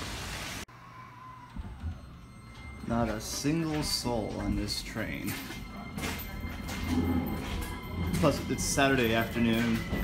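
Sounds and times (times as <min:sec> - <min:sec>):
train carriage interior whine: 0:01.2 - 0:10.0.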